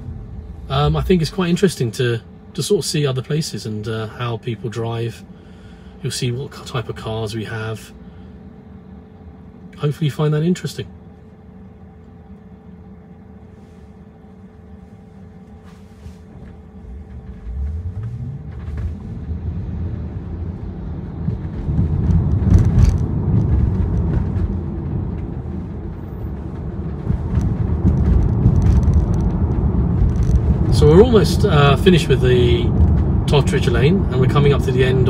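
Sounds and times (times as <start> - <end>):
car engine hum accelerating: 0.0 - 3.8, 11.5 - 35.0
road and tyre rumble: 0.0 - 35.0.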